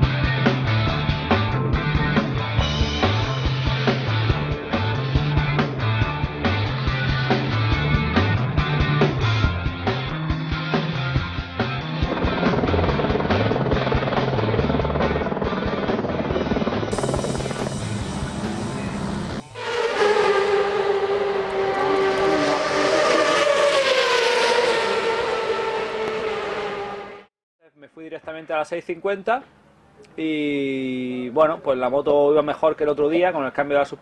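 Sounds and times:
rock music: 0:00.0 - 0:22.6
high-pitched engine note: 0:16.9 - 0:27.3.

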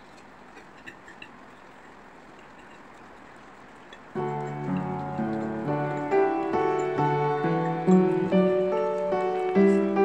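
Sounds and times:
low steady hiss: 0:00.0 - 0:10.0
cutlery clinking on plates: 0:00.5 - 0:03.0, 0:03.9 - 0:08.3.

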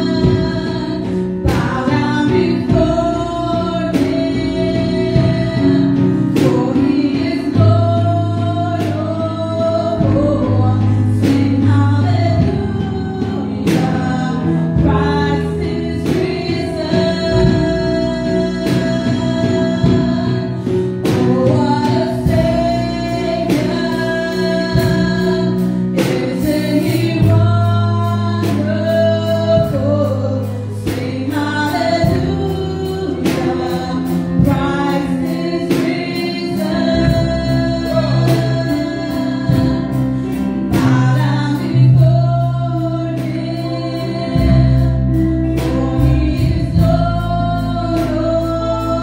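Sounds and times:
woman singing: 0:00.0 - 0:49.0.

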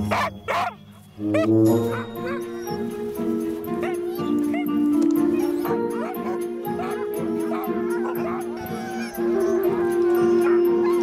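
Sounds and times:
background music with low notes: 0:00.0 - 0:11.0
sled dogs yipping and whining: 0:00.0 - 0:11.0.

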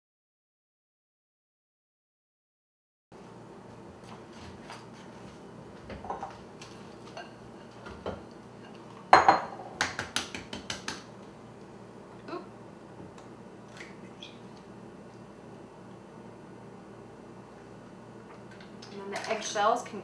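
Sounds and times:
glass bowls clinking on counter: 0:06.0 - 0:06.4, 0:08.0 - 0:09.9.

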